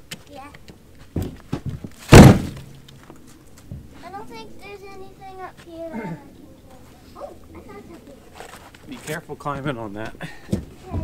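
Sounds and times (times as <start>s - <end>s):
log landing with heavy thunk: 1.1s - 2.7s.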